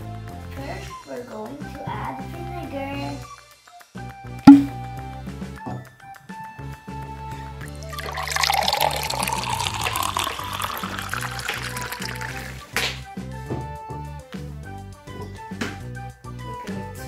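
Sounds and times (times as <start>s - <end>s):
liquid pouring into plastic bottle: 7.7s - 12.9s.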